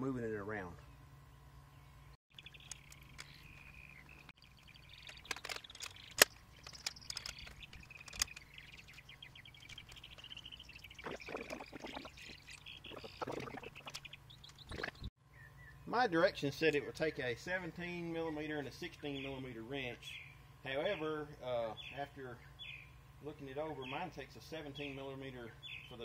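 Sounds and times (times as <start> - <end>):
birds singing: 0.8 - 16.0, 17.0 - 26.0
handling clatter: 5.0 - 8.9.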